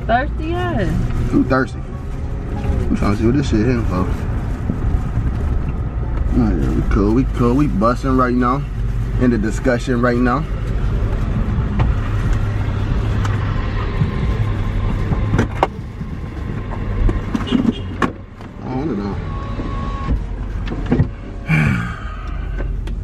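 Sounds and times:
car rumble inside cabin: 0.0s - 23.0s.

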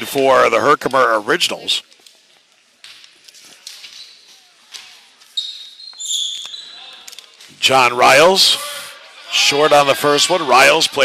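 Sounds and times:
high squeak: 5.4s - 6.8s.

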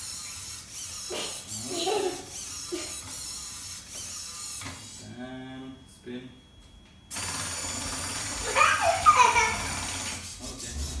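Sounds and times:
robot servo motors whirring: 0.0s - 5.0s, 7.1s - 11.0s.

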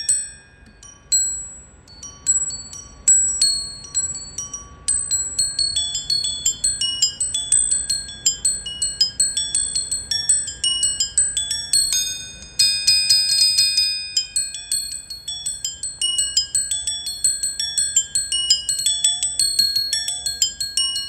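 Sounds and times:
mallets striking ringing bars: 5.6s - 21.0s.

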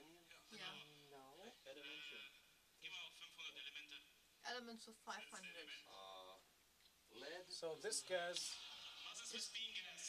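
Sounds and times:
quiet background talk: 0.0s - 10.0s.

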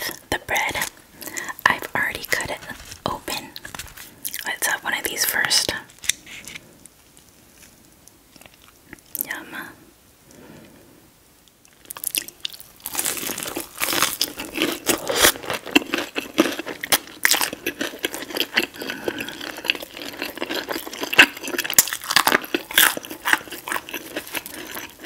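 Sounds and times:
crunchy chewing of fried chicken: 6.0s - 9.0s, 11.7s - 25.0s.

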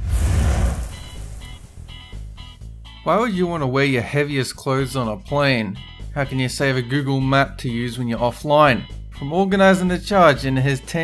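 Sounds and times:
noisy burst with low rumble: 0.0s - 2.4s
background music with repeated notes: 1.0s - 11.0s.

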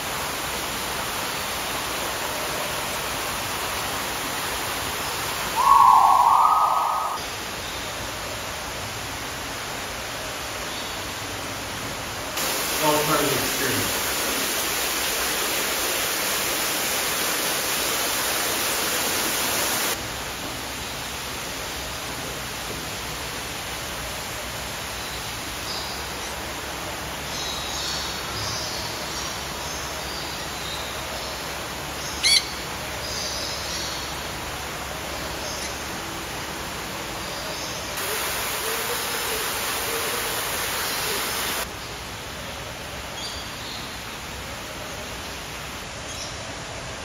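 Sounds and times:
steady hiss of water: 0.0s - 47.0s
small birds chirping: 5.0s - 7.8s
shrill bird call: 5.5s - 7.3s
waterfall splashing: 11.7s - 27.3s, 37.9s - 43.1s.

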